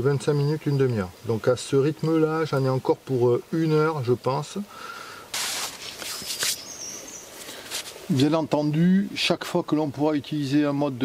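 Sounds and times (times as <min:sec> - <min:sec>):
bursts of hiss: 0:04.6 - 0:08.3
thin high bird calls: 0:05.4 - 0:08.0.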